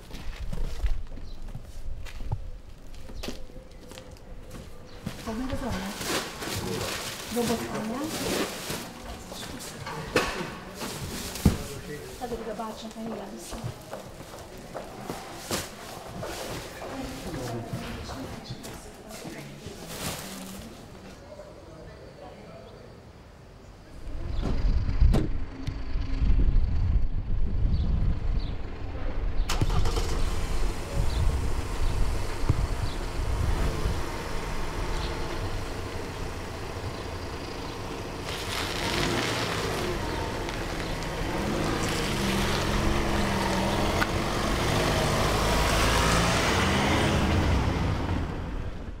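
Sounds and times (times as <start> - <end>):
vehicle engine rumbling: 0.0 - 21.1, 23.9 - 49.0.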